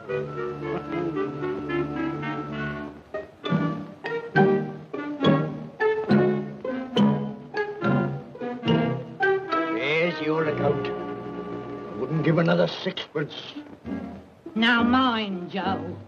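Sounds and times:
orchestral film music: 0.0s - 16.0s.

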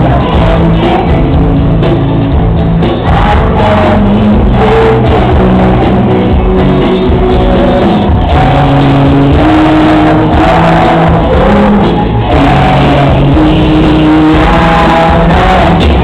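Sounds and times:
live pop band playing: 0.0s - 16.0s
person singing: 0.0s - 16.0s.

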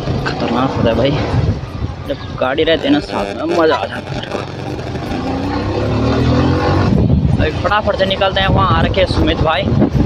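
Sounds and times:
motorcycle engine accelerating: 2.8s - 7.2s.

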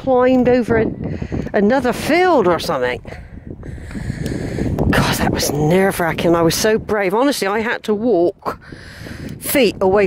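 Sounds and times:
wind rumble on microphone: 0.0s - 10.0s
person breathing heavily: 1.0s - 1.5s, 3.0s - 4.9s, 8.6s - 9.4s.

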